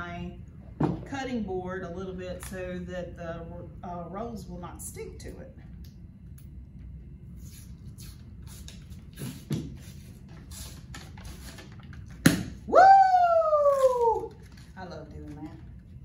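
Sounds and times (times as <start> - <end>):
woman squealing: 12.7 - 14.4
paper wrapper crackling: 13.7 - 15.8.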